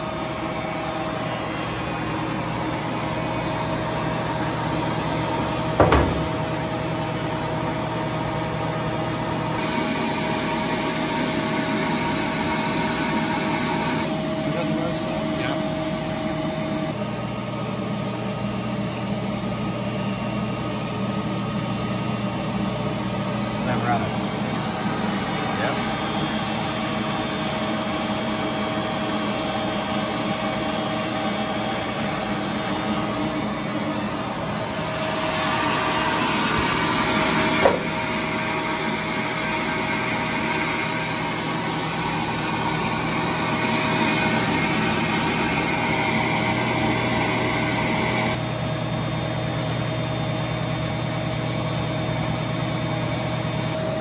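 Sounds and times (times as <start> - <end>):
splitting machine humming: 0.0 - 54.0.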